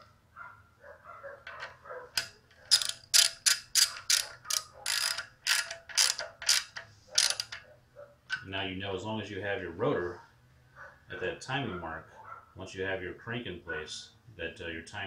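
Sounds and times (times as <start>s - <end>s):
quiet handling of tools: 0.8s - 8.5s
ratchet wrench clicking: 1.4s - 7.7s.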